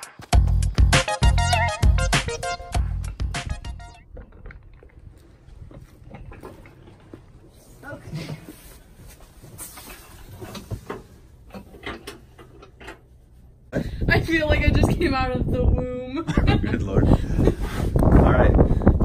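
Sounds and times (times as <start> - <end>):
background music: 0.0 - 4.0.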